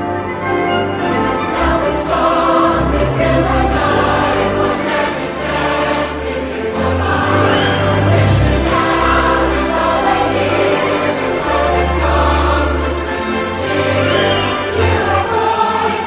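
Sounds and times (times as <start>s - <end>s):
choir singing: 0.0s - 16.0s.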